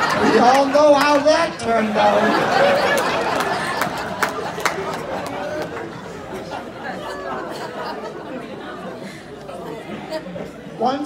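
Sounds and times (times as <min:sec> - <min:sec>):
audience laughter: 0:00.0 - 0:01.0, 0:01.7 - 0:10.7
audience chatter: 0:00.0 - 0:11.0.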